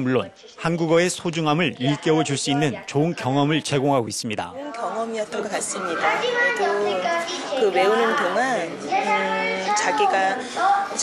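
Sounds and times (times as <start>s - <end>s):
children chattering: 1.8s - 4.0s, 4.7s - 11.0s
woman talking: 4.6s - 11.0s.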